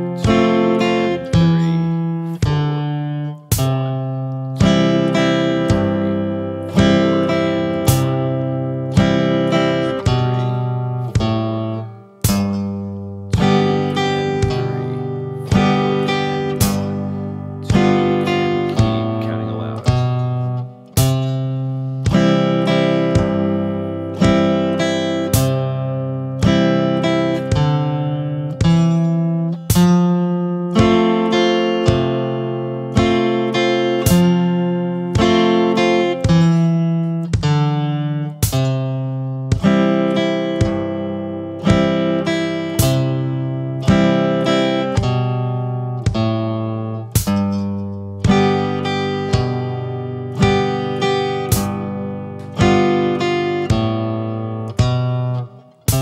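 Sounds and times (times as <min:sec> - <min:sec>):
clean electric guitar strumming chords: 0:00.0 - 0:56.0.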